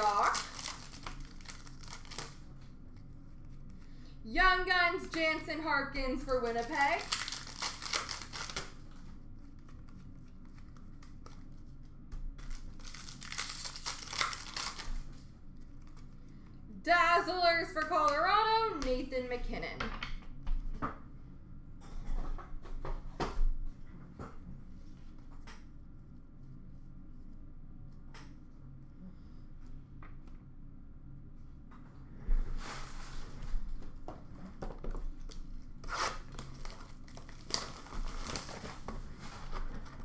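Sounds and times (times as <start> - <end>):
person speaking: 0.0 - 0.6, 4.3 - 7.1, 16.7 - 19.8
wrapper crinkling and tearing: 0.0 - 2.5, 6.4 - 9.0, 12.4 - 16.1, 35.8 - 38.9.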